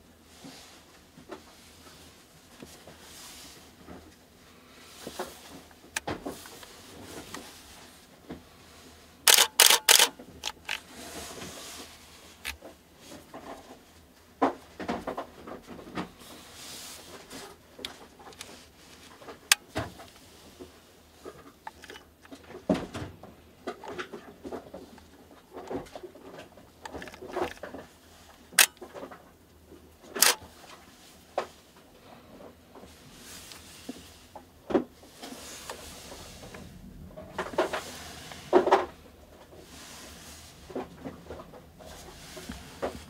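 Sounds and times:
camera shutter clack: 0:09.3 - 0:10.8, 0:30.2 - 0:30.4.

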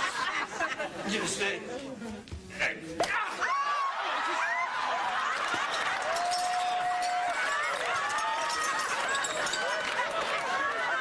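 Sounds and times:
audience laughing and calling out: 0:03.2 - 0:11.0.

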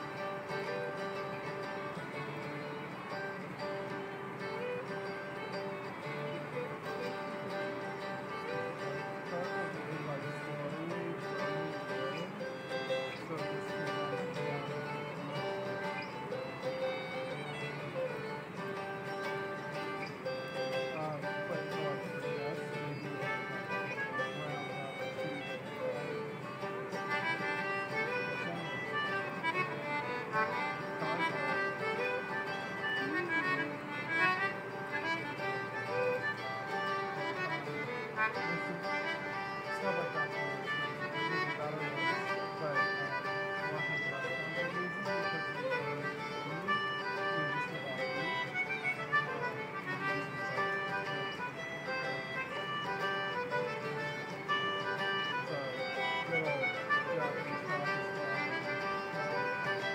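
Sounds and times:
accompanying string instrument: 0:00.0 - 0:59.9
fiddle with sliding notes: 0:00.0 - 0:59.9.

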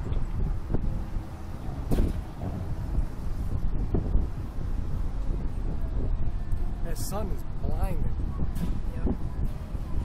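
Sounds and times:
wind rumbling over microphone: 0:00.0 - 0:10.0.

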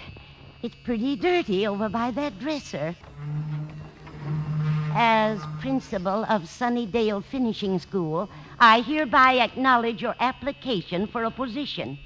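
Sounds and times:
woman's voice: 0:00.0 - 0:03.0, 0:05.0 - 0:12.0
vacuum cleaner humming: 0:03.9 - 0:06.5.

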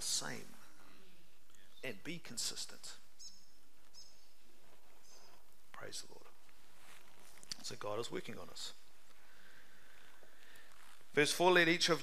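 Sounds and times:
steady room hiss: 0:00.0 - 0:12.0
small bird chirps: 0:03.2 - 0:04.4, 0:05.0 - 0:05.4.

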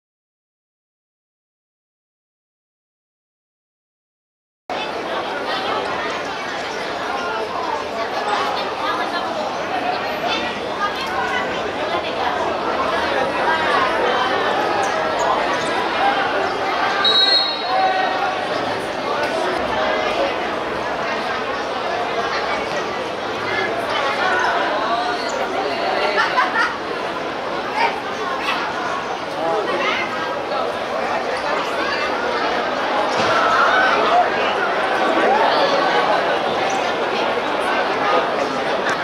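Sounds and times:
people talking and calling out: 0:04.7 - 0:39.0
high whistle: 0:17.0 - 0:17.8.

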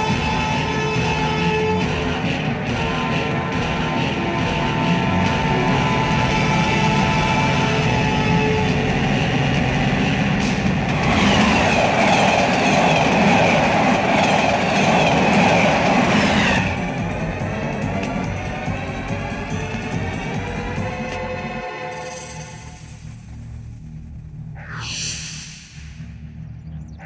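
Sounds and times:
train wheels clattering on rails: 0:00.0 - 0:21.6.

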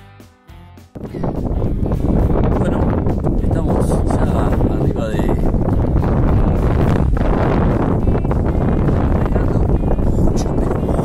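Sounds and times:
wind buffeting microphone: 0:01.0 - 0:11.0.

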